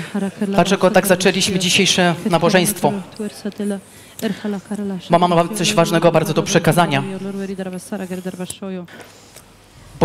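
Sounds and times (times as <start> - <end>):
voice over sound system: 5.1 - 7.5.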